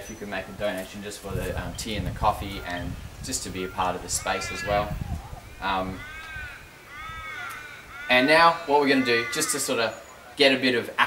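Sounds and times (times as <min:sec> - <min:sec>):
crow cawing: 0:03.6 - 0:10.4.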